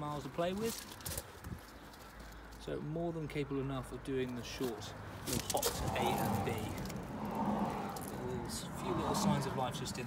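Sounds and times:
man speaking: 0:02.7 - 0:06.9, 0:08.1 - 0:10.0.

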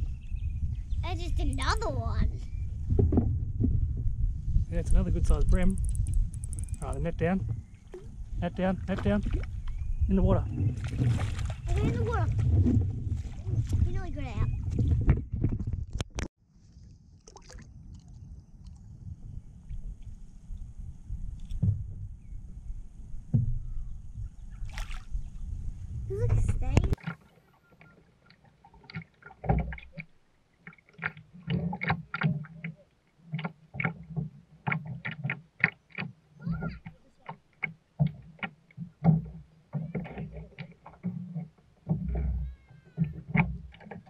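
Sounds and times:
wind and water rumble: 0:00.0 - 0:44.0
knocks and clicks on kayak: 0:28.8 - 0:30.1, 0:30.7 - 0:44.0.

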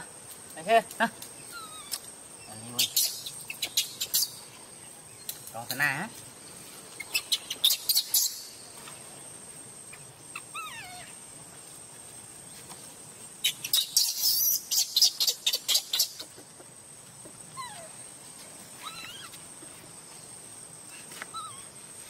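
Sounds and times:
infant monkey whimpering: 0:01.5 - 0:02.0, 0:09.9 - 0:11.2, 0:13.9 - 0:16.6, 0:17.5 - 0:18.0, 0:18.8 - 0:19.4, 0:21.3 - 0:21.7.

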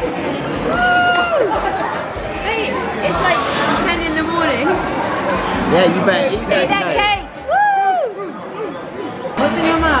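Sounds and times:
indistinct chatter of voices: 0:00.0 - 0:10.0.

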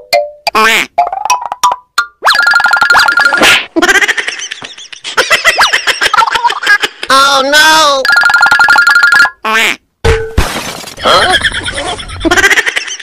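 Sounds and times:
cartoon springy boings: 0:00.0 - 0:03.7.

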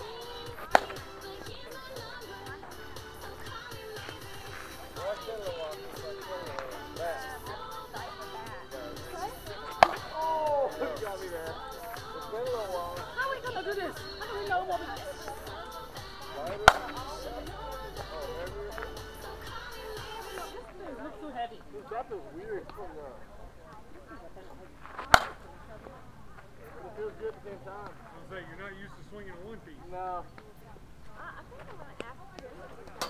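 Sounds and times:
background music: 0:00.0 - 0:21.1
bat striking ball: 0:00.5 - 0:01.1, 0:09.7 - 0:10.2, 0:16.6 - 0:17.0, 0:25.0 - 0:25.4.

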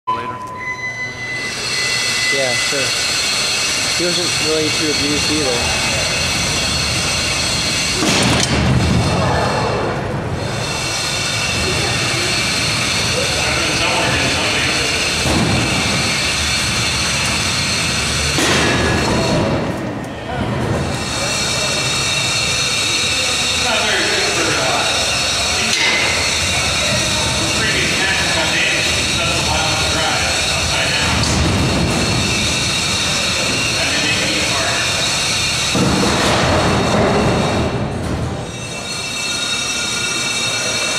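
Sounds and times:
electric motors whining: 0:00.4 - 0:40.9.

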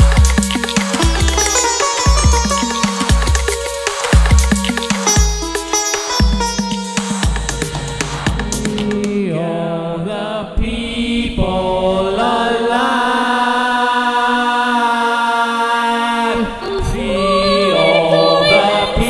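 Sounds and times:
choir singing chant-like notes: 0:07.6 - 0:19.0.

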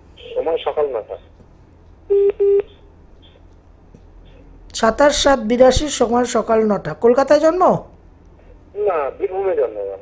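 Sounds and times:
telephone beeps: 0:02.1 - 0:02.8.

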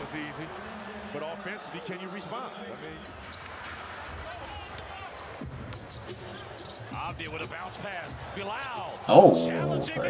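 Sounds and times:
crowd murmur: 0:09.1 - 0:10.0.

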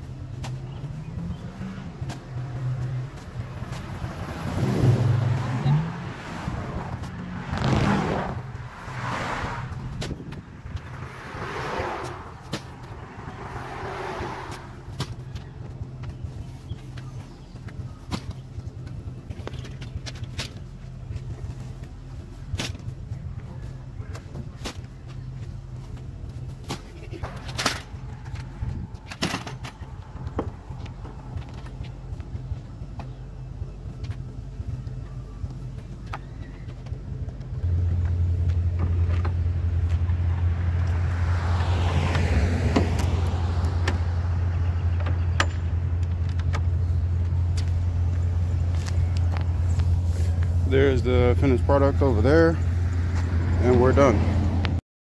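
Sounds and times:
car passing: 0:00.0 - 0:18.0, 0:20.9 - 0:54.8
vehicle engine hum: 0:00.0 - 0:54.8.

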